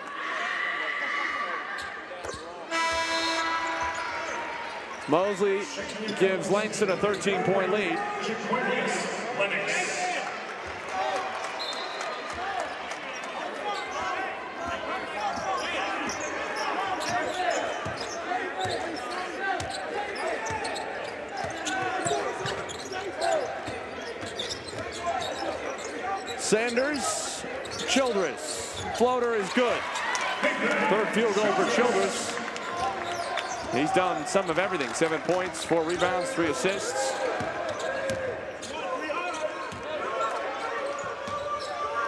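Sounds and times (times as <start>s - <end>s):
players and spectators voices: 0.0s - 42.0s.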